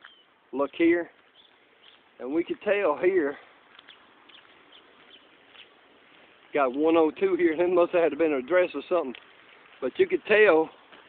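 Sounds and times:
faint bird chirps: 0:00.0 - 0:00.4, 0:01.3 - 0:02.1, 0:03.8 - 0:05.8.

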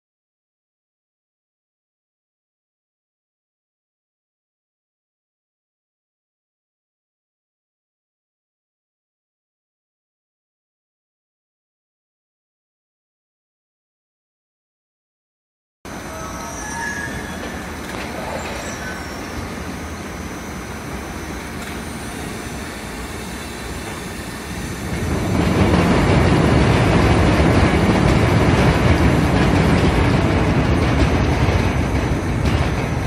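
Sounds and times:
roller conveyor machinery rumble: 0:15.9 - 0:33.0.

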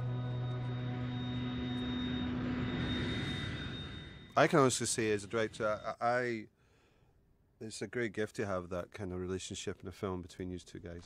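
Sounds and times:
low droning chord: 0:00.0 - 0:06.0
rushing noise: 0:00.0 - 0:06.0.

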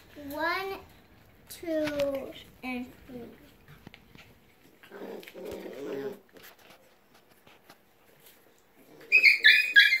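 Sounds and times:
puppies whining: 0:08.8 - 0:10.0.

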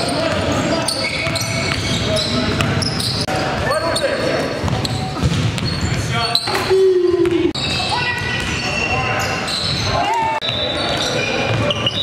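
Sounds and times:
players' voices echoing in gym: 0:00.0 - 0:12.0
sneakers squeaking on court: 0:00.0 - 0:12.0
basketball bouncing: 0:00.1 - 0:03.7, 0:04.5 - 0:06.1, 0:07.2 - 0:08.6.

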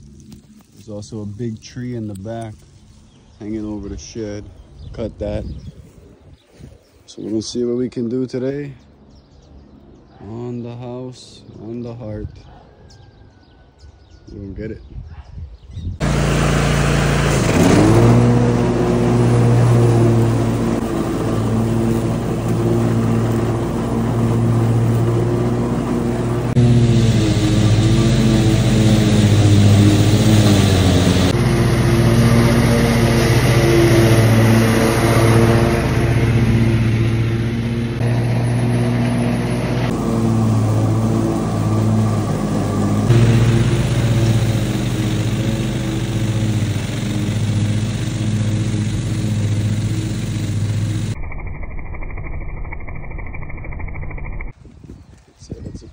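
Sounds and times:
lawn mower engine cutting grass: 0:16.0 - 0:51.2.

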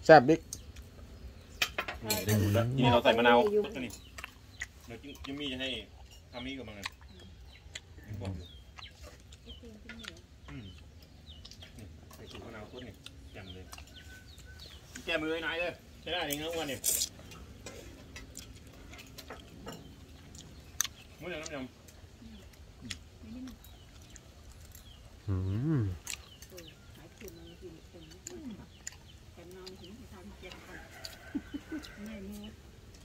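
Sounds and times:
cutlery and dishes clinking: 0:01.6 - 0:02.6
man speaking: 0:02.1 - 0:03.6, 0:25.3 - 0:26.0.

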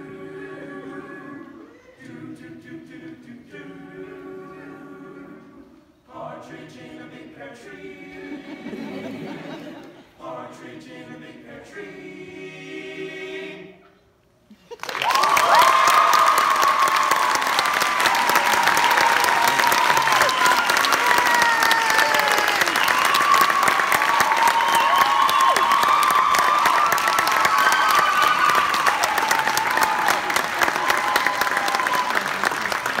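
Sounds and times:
boys' vocal group singing: 0:00.0 - 0:13.8
audience applause and cheering: 0:14.7 - 0:33.0.

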